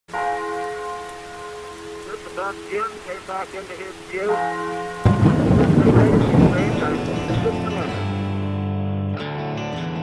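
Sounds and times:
bell-like tone: 0:04.1 - 0:08.0.

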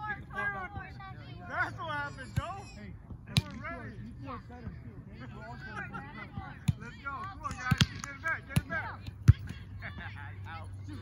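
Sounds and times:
volleyball smacks: 0:07.4 - 0:09.6.

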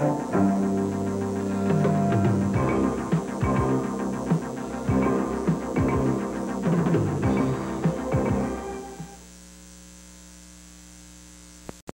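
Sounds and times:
credits music: 0:00.0 - 0:09.2
low electrical mains hum: 0:00.0 - 0:11.8.

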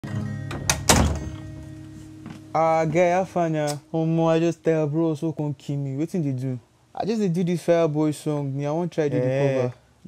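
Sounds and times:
acoustic guitar strings ringing: 0:00.0 - 0:05.1
knocks and loud thump: 0:00.5 - 0:01.4.

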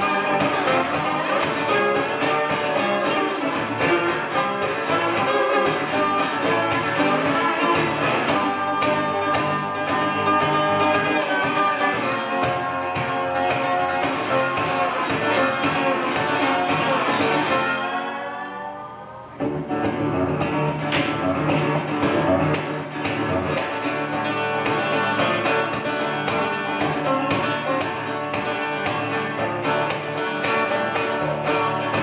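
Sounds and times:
resonator guitar fingerpicked: 0:00.0 - 0:32.0.

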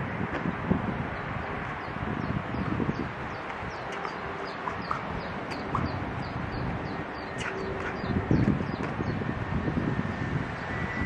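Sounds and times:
bird chirping: 0:01.2 - 0:09.3.

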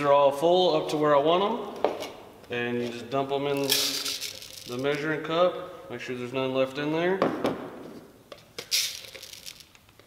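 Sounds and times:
rice grains rustling: 0:03.6 - 0:04.9, 0:08.7 - 0:09.7.

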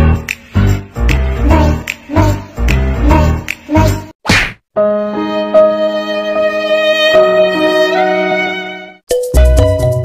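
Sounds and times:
background music with held notes: 0:04.8 - 0:10.0.

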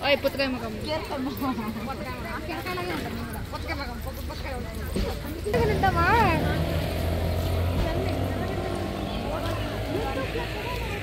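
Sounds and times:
faint voices: 0:00.8 - 0:11.0
vehicle engine hum: 0:05.5 - 0:11.0.

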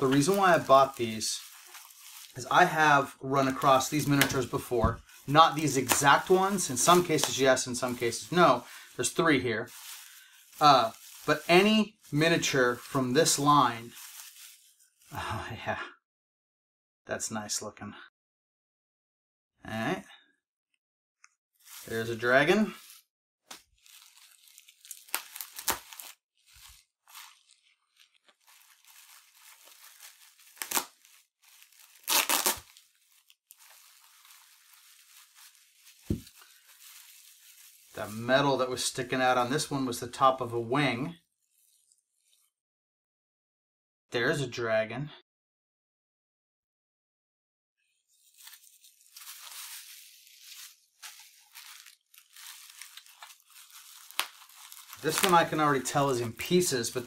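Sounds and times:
bubble wrap crinkling: 0:00.0 - 0:15.2, 0:21.6 - 0:39.6, 0:48.1 - 0:57.0
bubble wrap tearing: 0:00.0 - 0:15.2, 0:21.6 - 0:38.4, 0:48.1 - 0:57.0.

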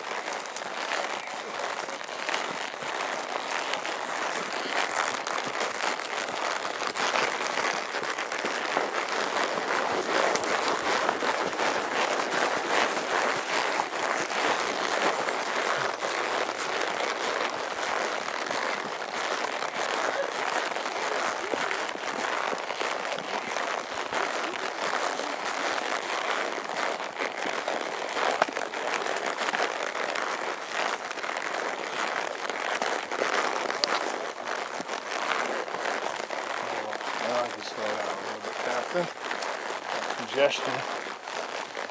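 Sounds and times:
pine boughs rustling and scraping: 0:00.2 - 0:41.9.

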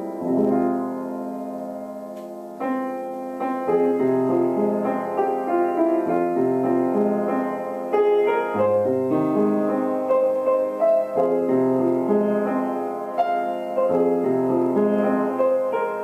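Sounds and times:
gentle solo piano: 0:00.0 - 0:16.0.

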